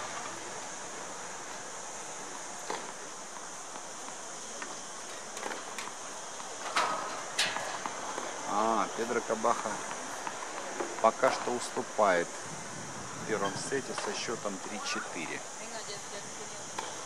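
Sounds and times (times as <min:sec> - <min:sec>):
steady outdoor hiss: 0:00.0 - 0:17.0.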